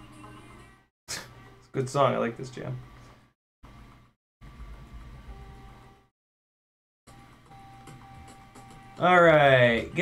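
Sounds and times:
faint background music: 7.1 - 10.0.

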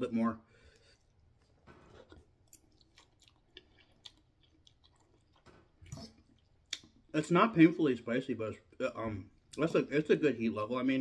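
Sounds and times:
chewing noodles: 0.7 - 7.2.

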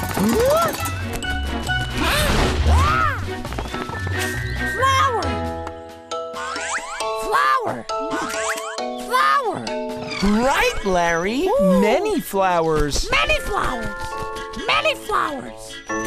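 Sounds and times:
cartoon background music: 0.1 - 16.0.

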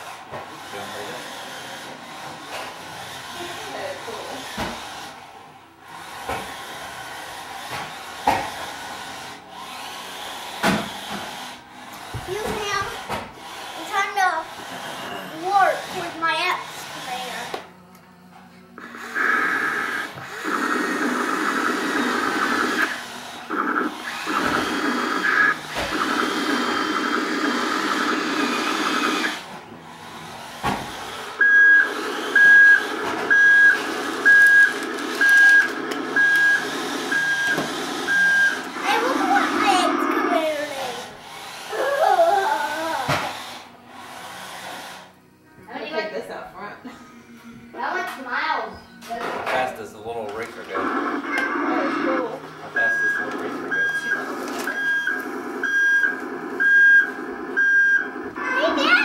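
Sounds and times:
buzzy electronic whir: 0.0 - 46.2
high electronic beeps: 20.4 - 22.9, 31.4 - 38.9, 51.0 - 58.4.

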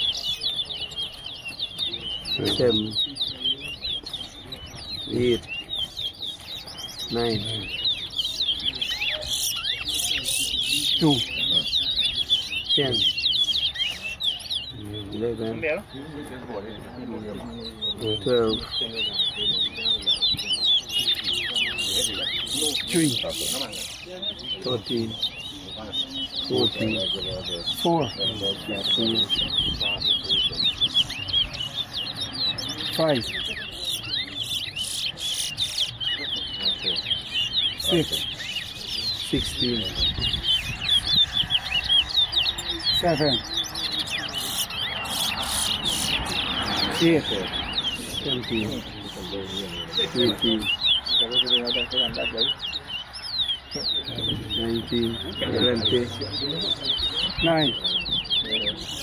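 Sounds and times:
finches singing whistled phrases: 0.0 - 59.0.

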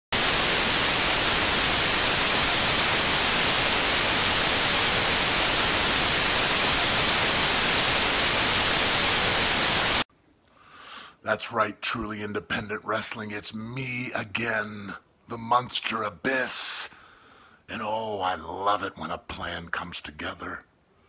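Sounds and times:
television static hiss: 0.1 - 10.1.

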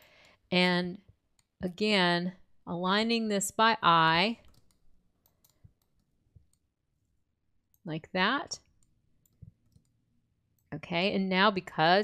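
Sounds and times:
computer mouse click: 4.4 - 6.6, 8.8 - 10.0.

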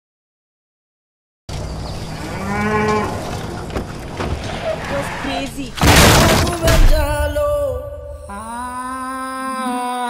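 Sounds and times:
cow mooing: 2.2 - 3.4.

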